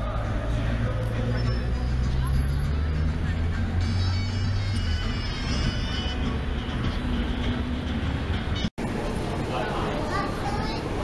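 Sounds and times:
traffic: 0.0 - 11.0
voices: 8.9 - 11.0.

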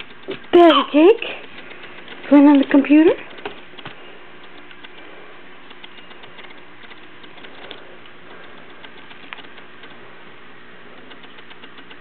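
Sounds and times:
hand patting laptop keyboard: 0.0 - 5.1.

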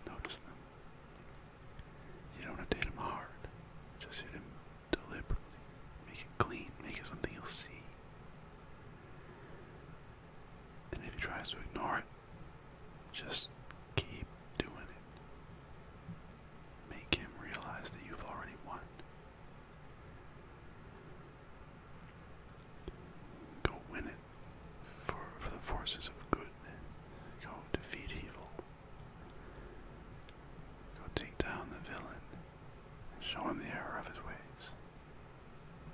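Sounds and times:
man whispering: 0.0 - 0.6, 2.3 - 5.4, 6.0 - 8.0, 10.9 - 12.1, 13.1 - 15.1, 16.8 - 19.1, 22.8 - 28.7, 30.9 - 32.4, 33.1 - 34.8.

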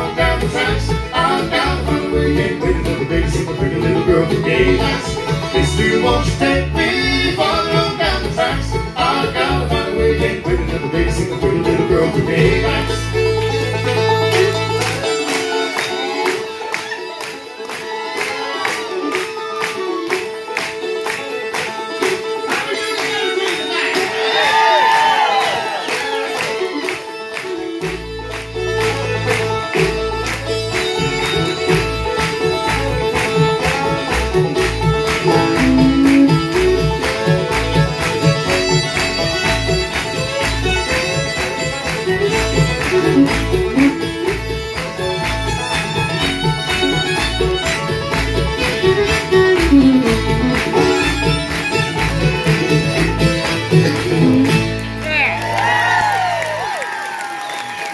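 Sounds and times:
acoustic guitar: 0.0 - 24.4, 26.3 - 55.6
resonator banjo: 0.0 - 24.4, 26.2 - 55.4
bluegrass band playing: 0.0 - 56.8
fiddle: 0.0 - 56.8.

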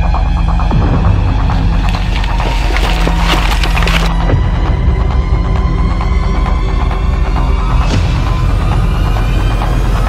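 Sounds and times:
twigs and brush snapping: 1.7 - 4.2.

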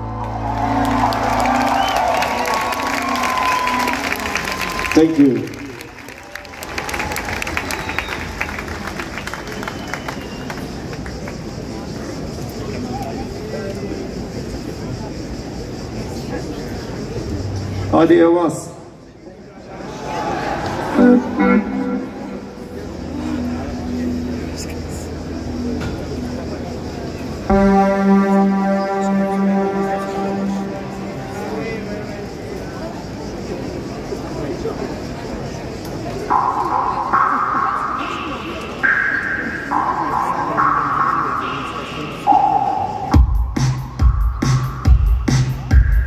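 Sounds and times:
crowd noise: 0.0 - 46.0
held pitched note: 21.0 - 26.7, 27.5 - 32.1
deep drone hum: 21.0 - 32.6
drum machine beat: 36.3 - 46.0.

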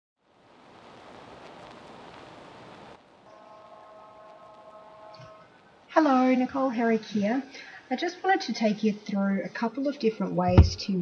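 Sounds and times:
faint multi-tone whine: 0.2 - 11.0
steady background hiss: 0.2 - 11.0.

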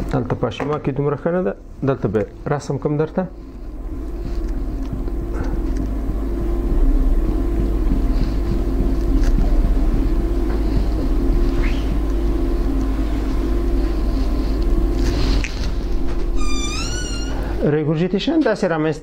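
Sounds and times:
steady low machine hum: 0.0 - 19.0.

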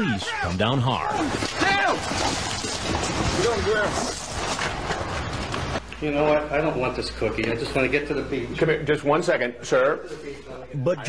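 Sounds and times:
people shouting: 0.0 - 2.6.

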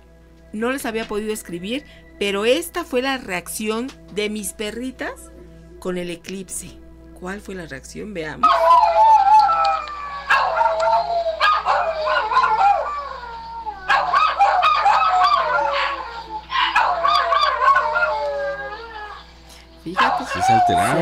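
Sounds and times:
dogs howling: 8.4 - 21.0.

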